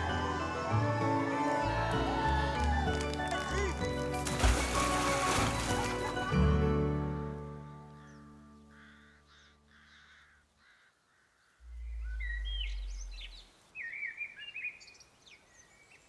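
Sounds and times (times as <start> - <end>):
birds calling and chirping: 7.9 - 16.0
low rumble: 11.6 - 13.6.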